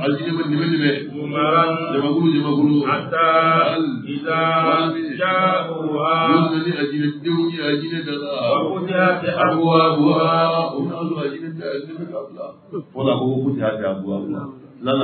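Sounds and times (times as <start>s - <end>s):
man chanting into a microphone: 0.0s - 15.0s.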